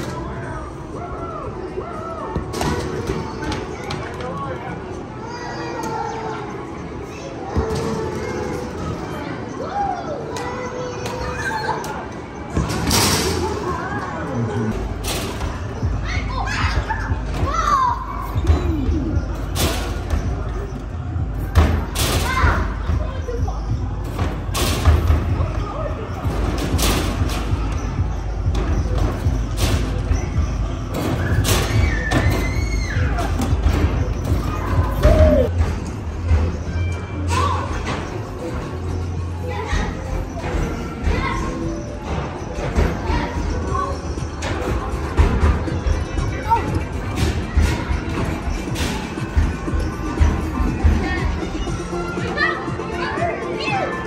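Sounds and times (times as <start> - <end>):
crowd voices: 0.0 - 54.0.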